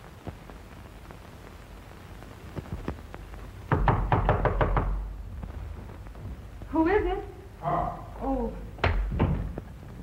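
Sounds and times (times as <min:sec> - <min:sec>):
rapid knocking on a door: 0:03.7 - 0:05.1, 0:08.8 - 0:09.6.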